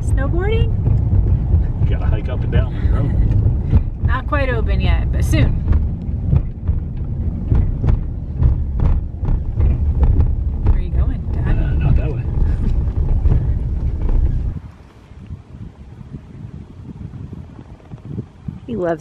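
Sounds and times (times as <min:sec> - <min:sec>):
small knocks and rattles: 0:00.0 - 0:14.6
truck engine and tyres rumbling: 0:00.0 - 0:19.0
wind noise outdoors: 0:00.0 - 0:19.0.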